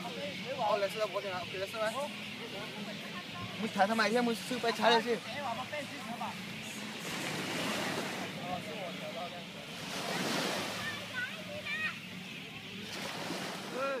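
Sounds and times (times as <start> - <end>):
people talking: 7.7 - 12.9.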